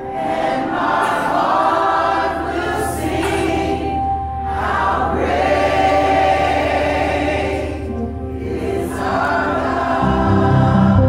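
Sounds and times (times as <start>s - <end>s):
choir singing gospel song: 0.0s - 11.0s
electric bass notes: 6.5s - 11.0s.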